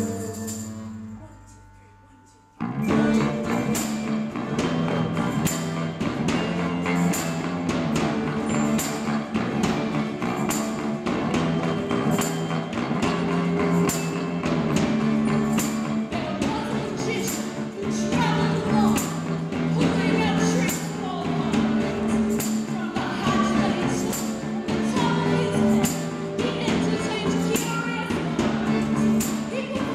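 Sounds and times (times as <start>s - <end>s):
live band music: 2.6s - 29.9s
percussion hits: 2.6s - 29.9s.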